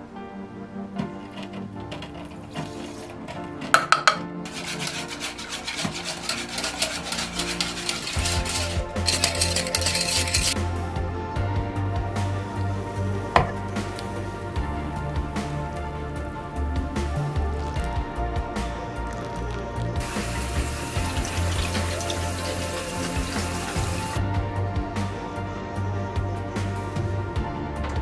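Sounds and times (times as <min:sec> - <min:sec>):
background music: 0:00.0 - 0:28.0
whisk scraping in a saucepan: 0:04.5 - 0:10.6, 0:20.0 - 0:24.2
single knock: 0:13.4 - 0:13.6.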